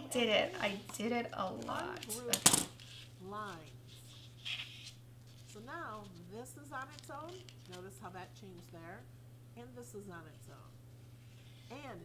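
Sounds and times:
scissors clattering down on mat: 2.1s - 2.7s.

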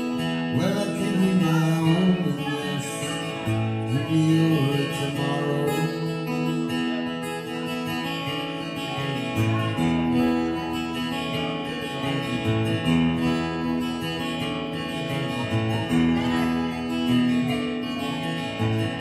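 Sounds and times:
acoustic guitar chords: 0.0s - 19.0s.

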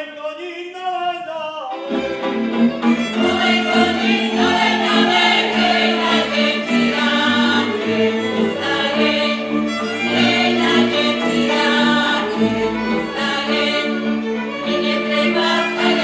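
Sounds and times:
folk band with fiddles and bass: 1.7s - 16.0s
group of voices singing: 2.0s - 16.0s.

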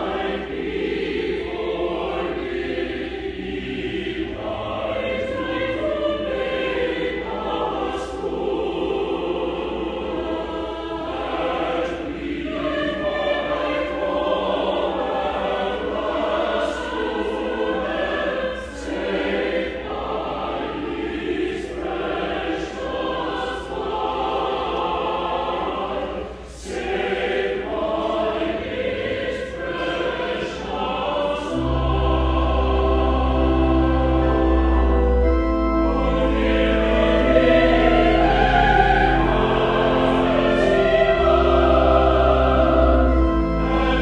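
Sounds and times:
choir singing: 0.0s - 44.0s
organ low chord: 31.5s - 44.0s.

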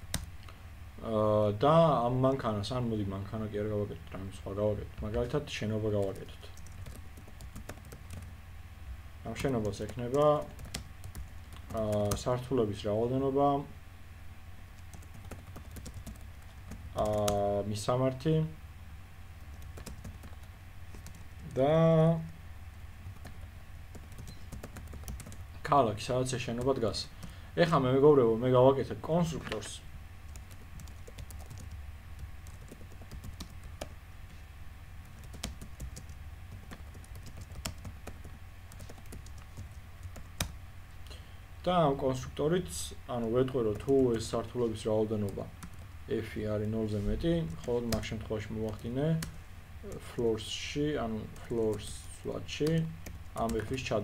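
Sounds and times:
computer keyboard typing: 0.0s - 0.3s, 6.1s - 8.3s, 9.4s - 12.3s, 14.8s - 17.4s, 19.5s - 21.6s, 23.0s - 25.4s, 30.3s - 33.9s, 35.0s - 40.6s, 47.4s - 50.2s
steady low hum: 0.0s - 54.0s.

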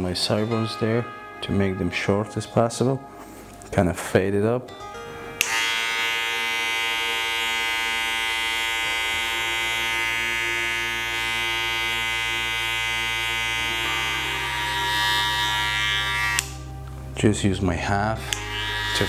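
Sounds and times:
electric hair clipper humming: 5.4s - 16.7s, 18.2s - 19.0s.

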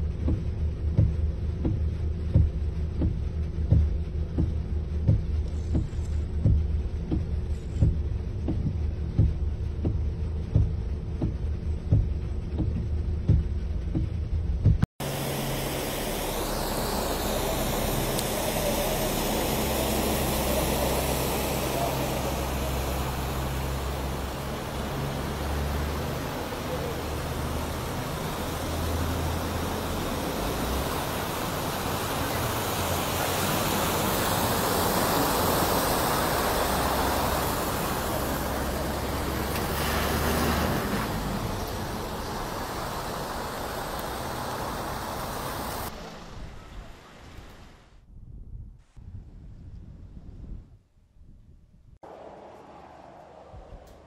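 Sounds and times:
vehicle engines humming: 0.0s - 47.0s, 52.0s - 54.0s
tyres pushing through floodwater: 0.0s - 47.8s.

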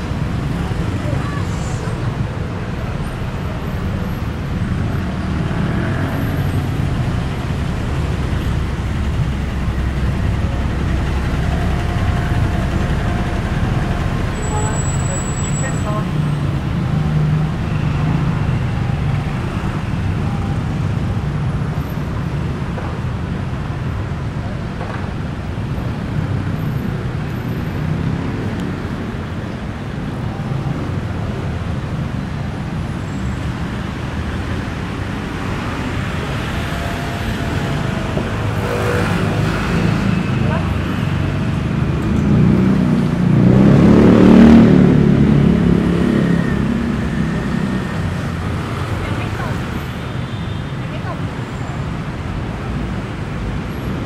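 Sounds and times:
road traffic rumble: 0.0s - 54.0s.

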